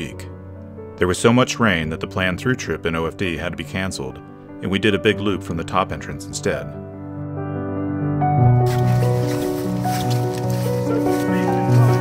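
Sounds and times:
music of long held notes: 8.4 - 12.0.

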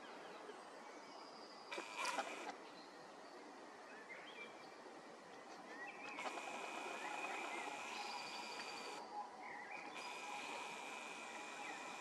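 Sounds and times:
birds chirping: 1.7 - 2.5, 6.0 - 9.0, 9.8 - 12.0.

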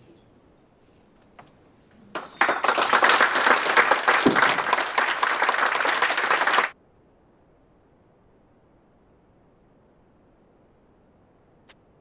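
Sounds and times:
audience applauding: 2.1 - 6.8.

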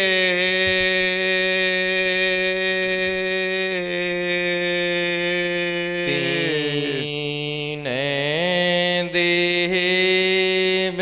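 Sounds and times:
man singing long sliding notes: 0.0 - 11.0
sustained drone: 6.0 - 7.2.

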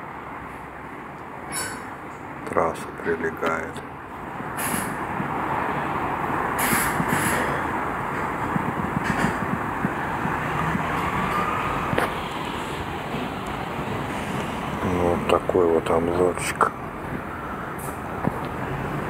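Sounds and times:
highway traffic rushing: 0.0 - 19.0.

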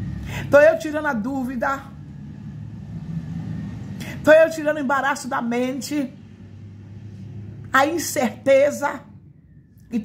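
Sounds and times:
faint hum: 0.0 - 10.0
low background rumble: 0.0 - 10.0.

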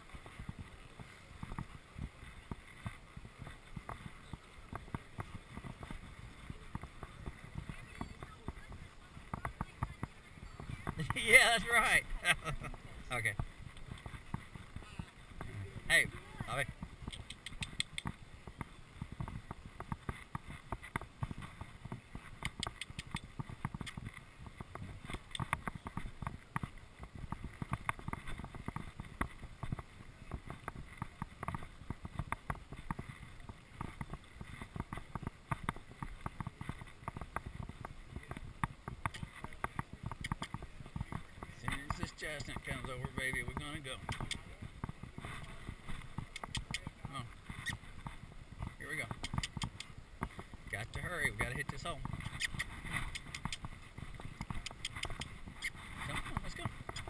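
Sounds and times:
hooves and tack clicking: 0.0 - 57.0.

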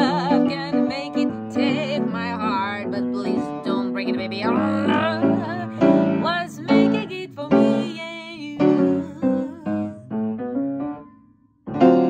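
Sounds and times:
woman singing jazz vocal: 0.0 - 10.0
piano chords: 0.0 - 12.0.

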